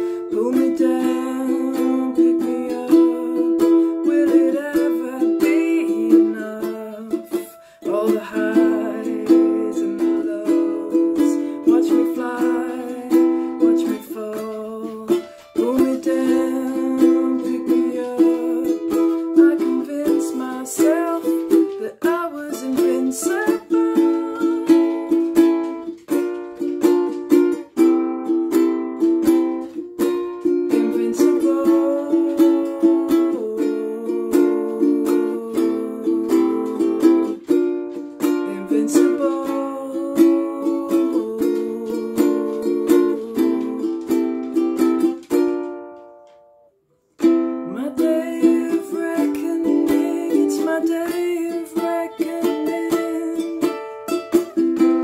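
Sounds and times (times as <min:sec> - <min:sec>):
ukulele picking and strumming: 0:00.0 - 0:55.0.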